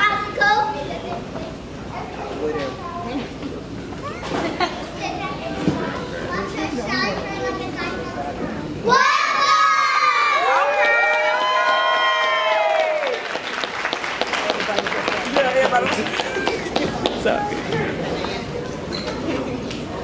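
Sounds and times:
children chattering: 0.0 - 10.0, 15.6 - 20.0
young children cheering: 8.9 - 13.4.

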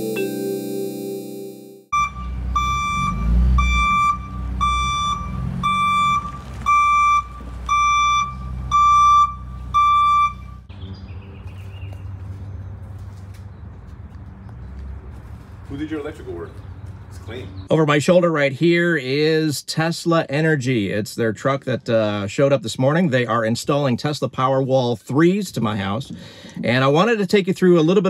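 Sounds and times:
outdoor background: 1.8 - 28.0
reversing alarm beeping: 1.9 - 10.7
van engine running: 2.0 - 17.7.

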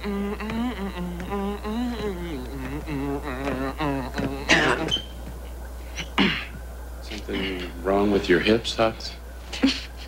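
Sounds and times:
buzzy nasal tune: 0.0 - 5.2.

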